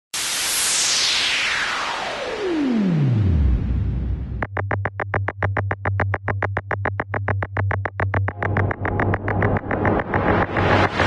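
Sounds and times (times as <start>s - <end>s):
white-noise sweep falling in pitch: 0.2s - 6.4s, 7.8s - 11.0s.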